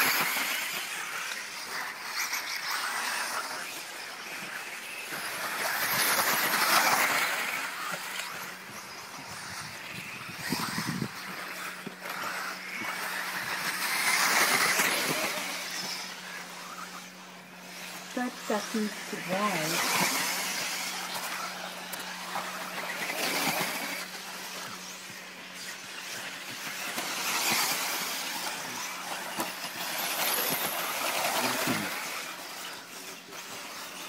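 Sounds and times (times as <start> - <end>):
rc cars racing on dirt: 0.0 - 34.0.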